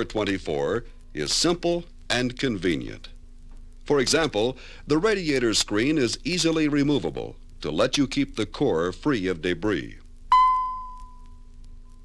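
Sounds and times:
faint low hum: 0:00.0 - 0:12.0
bell-like ding: 0:10.3 - 0:11.2.

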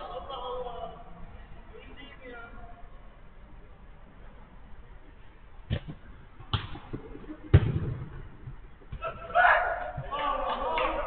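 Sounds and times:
football being kicked: 0:05.7 - 0:09.1.

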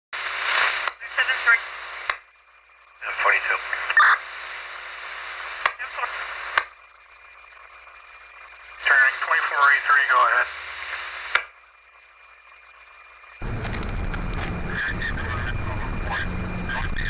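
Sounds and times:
hissing radio transmissions with voices: 0:00.2 - 0:02.2, 0:02.9 - 0:06.8, 0:08.8 - 0:11.6, 0:13.4 - 0:17.0
radio squelch click: 0:05.6 - 0:06.7, 0:13.4 - 0:17.0.

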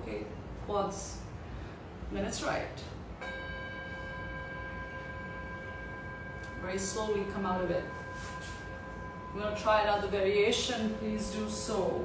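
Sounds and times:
bell-like chime: 0:03.2 - 0:11.6.

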